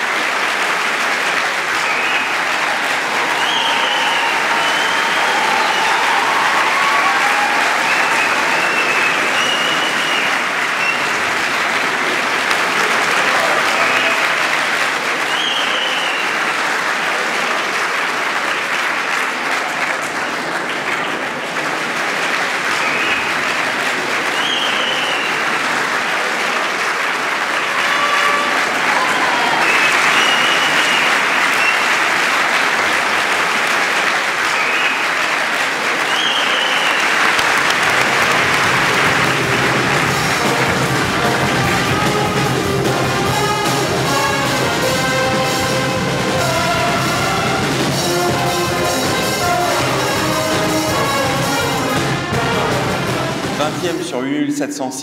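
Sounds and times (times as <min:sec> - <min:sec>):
audience applause: 0:00.0 - 0:54.1
short high-pitched cheers: 0:01.8 - 0:11.2, 0:13.0 - 0:16.4, 0:27.6 - 0:32.2.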